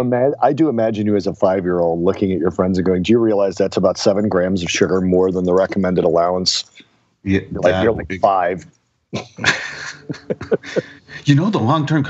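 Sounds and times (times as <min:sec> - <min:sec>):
breathy wheezing laughter: 0:09.2 - 0:11.2.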